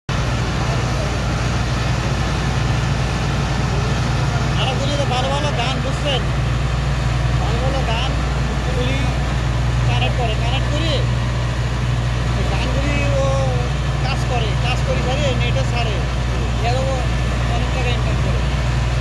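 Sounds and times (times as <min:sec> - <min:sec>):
pump engine drone: 0:00.1 - 0:19.0.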